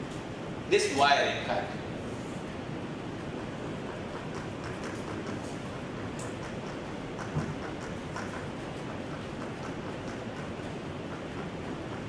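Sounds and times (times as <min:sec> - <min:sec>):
steady background rumble: 0:00.0 - 0:12.0
chalk tapping on a blackboard: 0:03.4 - 0:12.0.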